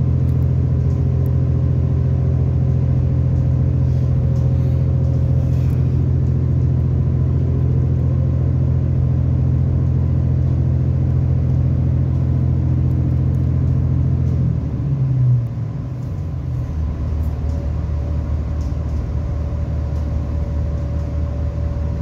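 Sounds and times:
train engine drone: 0:00.0 - 0:22.0.

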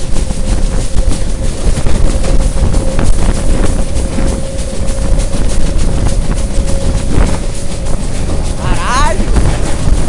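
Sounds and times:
train wheels rumbling on rails: 0:00.0 - 0:10.0
wind buffeting microphone: 0:00.0 - 0:10.0.

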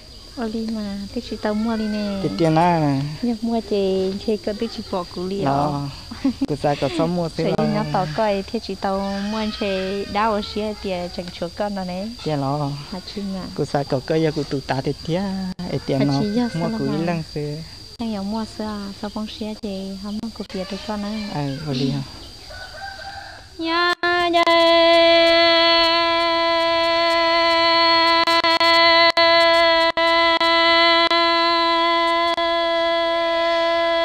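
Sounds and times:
high insect drone: 0:00.0 - 0:34.0
person speaking: 0:05.1 - 0:08.2, 0:12.6 - 0:17.5, 0:21.5 - 0:22.1
person singing wavering notes: 0:07.4 - 0:08.1, 0:23.6 - 0:34.0.

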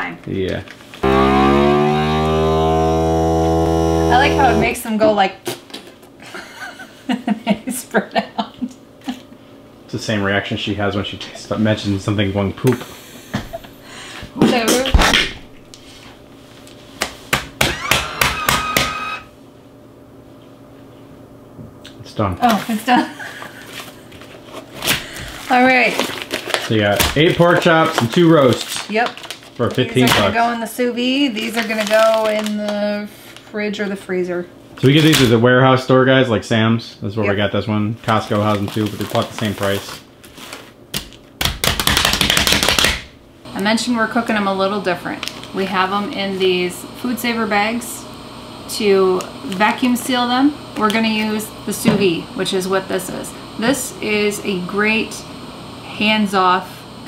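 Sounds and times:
vacuum sealer drawing air: 0:01.0 - 0:04.8, 0:17.6 - 0:19.3
hands patting plastic packs: 0:24.9 - 0:30.3, 0:40.9 - 0:43.1.

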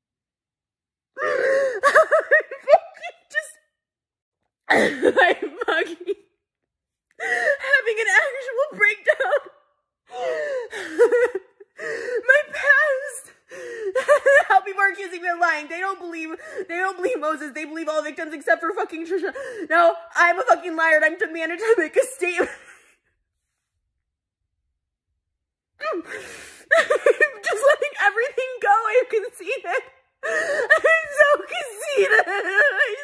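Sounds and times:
woman crying: 0:01.2 - 0:03.5, 0:04.7 - 0:06.2, 0:07.2 - 0:09.5, 0:10.1 - 0:17.5, 0:25.8 - 0:33.0.

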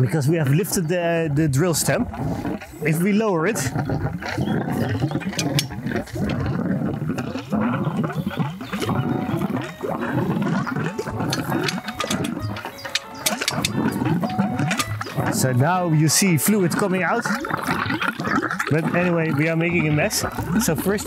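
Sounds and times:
drill stem gurgling and surging: 0:01.2 - 0:21.0
fluid spurting and splashing: 0:01.3 - 0:21.0.

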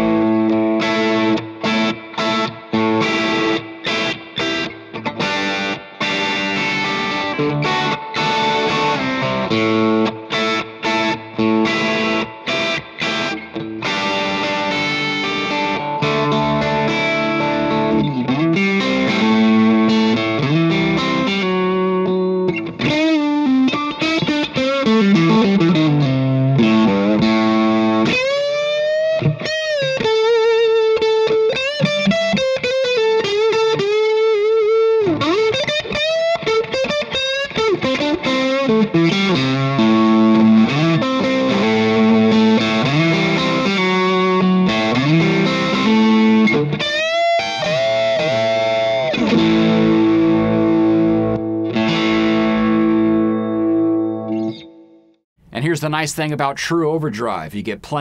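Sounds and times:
overdriven electric guitar: 0:00.0 - 0:55.2.

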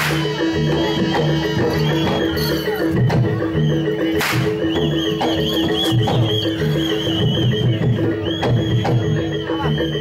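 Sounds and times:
steady drum rhythm: 0:00.0 - 0:10.0
traditional ensemble music: 0:00.0 - 0:10.0
sharp crack: 0:04.2 - 0:04.6.

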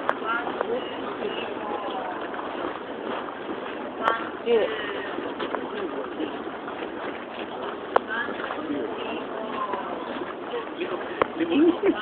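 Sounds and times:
outdoor ambience: 0:00.0 - 0:12.0.

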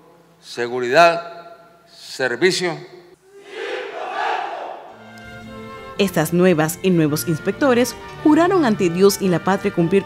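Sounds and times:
group shouting in unison: 0:03.2 - 0:05.0
background music with sustained notes: 0:04.9 - 0:10.0.

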